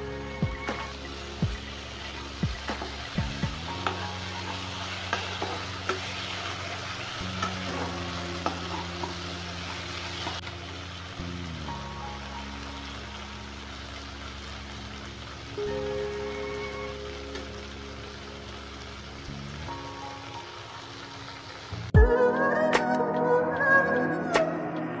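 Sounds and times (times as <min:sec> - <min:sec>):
sauce sizzling in a frying pan: 0:00.0 - 0:22.0.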